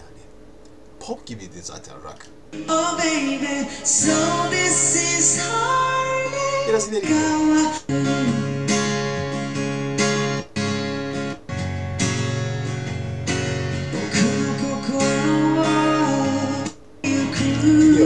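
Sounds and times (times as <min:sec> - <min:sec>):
acoustic guitar strumming: 0:02.6 - 0:18.0
man singing: 0:02.7 - 0:08.5, 0:13.9 - 0:18.0.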